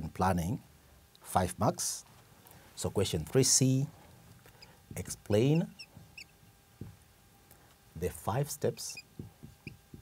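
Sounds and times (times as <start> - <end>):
marker squeaking on whiteboard: 5.5 - 6.4, 8.9 - 9.8.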